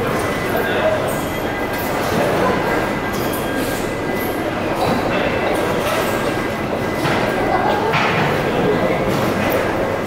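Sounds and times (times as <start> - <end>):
busy indoor market din: 0.0 - 10.0.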